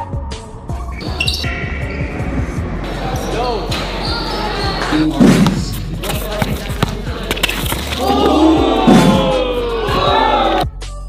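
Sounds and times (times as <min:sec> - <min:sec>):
background music with bass: 0:00.0 - 0:11.0
crowd voices: 0:01.0 - 0:10.7
basketball thudding on court: 0:05.2 - 0:09.2.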